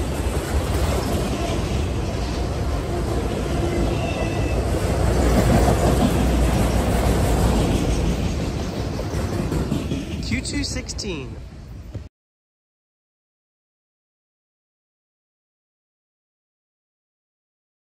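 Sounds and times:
freight train rolling past: 0.0s - 12.0s.

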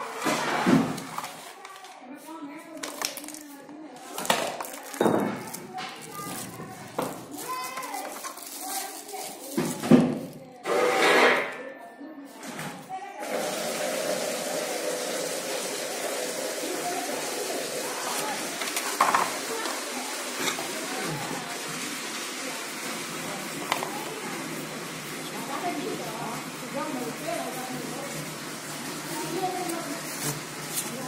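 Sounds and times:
loud handling sounds: 2.6s - 11.6s.

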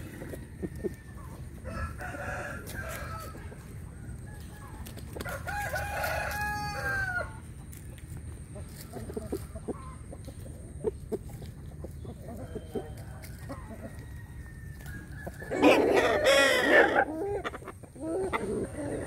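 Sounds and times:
rustling of dry vines underfoot: 0.0s - 16.6s
rooster clucking: 0.0s - 19.0s
rooster crowing: 1.6s - 3.5s, 5.2s - 7.4s.

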